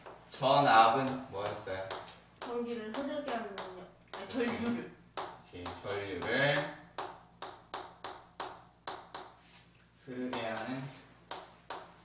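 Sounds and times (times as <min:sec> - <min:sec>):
chalk tapping on chalkboard: 0:00.0 - 0:09.6, 0:10.2 - 0:12.0.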